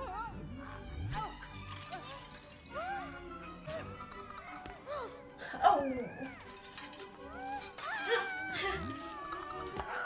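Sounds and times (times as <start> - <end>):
orchestral music: 0.0 - 10.0.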